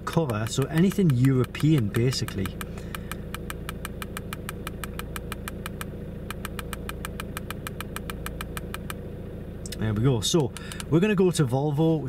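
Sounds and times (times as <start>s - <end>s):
low steady hum: 0.0s - 12.0s
rapid button clicking: 0.1s - 9.0s.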